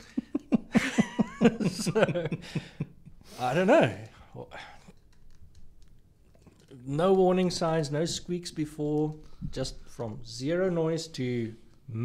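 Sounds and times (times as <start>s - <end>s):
man speaking: 3.4s - 4.9s
faint small clicks and taps: 4.9s - 6.8s.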